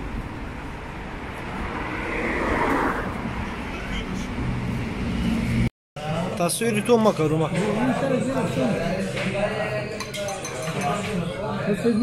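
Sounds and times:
car passing: 0.0 - 5.7
road noise: 0.0 - 6.2.

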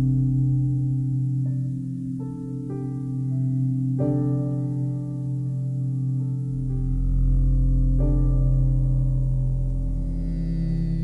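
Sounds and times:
calm meditation music: 0.0 - 11.0.

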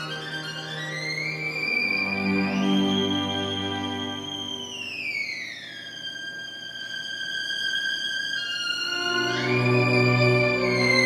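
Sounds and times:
solo violin glide: 0.0 - 11.0.

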